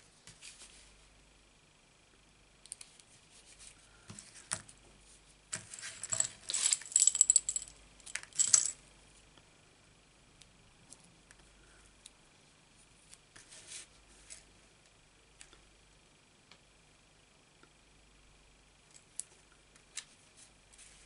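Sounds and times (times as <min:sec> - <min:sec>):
metal charm jangling: 0:06.1 - 0:08.8.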